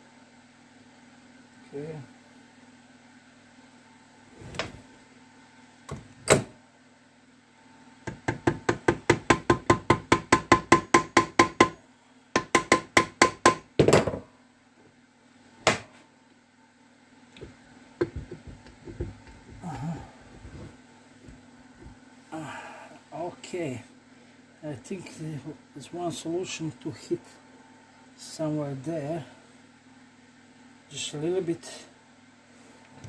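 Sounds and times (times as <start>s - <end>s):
mallet knocking on metal casing: 8.1s - 11.8s, 12.4s - 14.2s.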